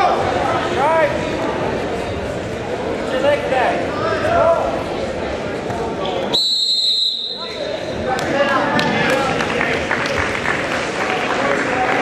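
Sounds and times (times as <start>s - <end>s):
crowd chatter and shouting: 0.0s - 12.0s
whistle blast: 6.3s - 7.6s.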